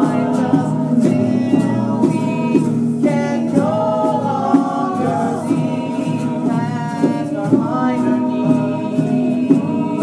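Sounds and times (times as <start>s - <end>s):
group of voices singing: 0.0s - 10.0s.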